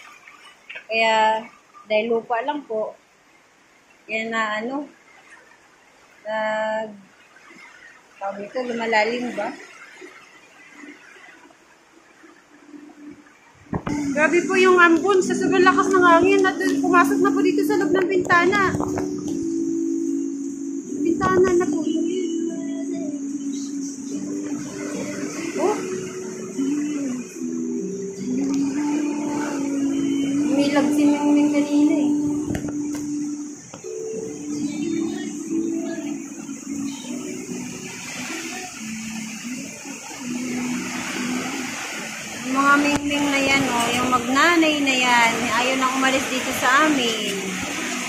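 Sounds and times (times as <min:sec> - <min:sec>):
heavy rain hiss: 0:13.6 - 0:48.0.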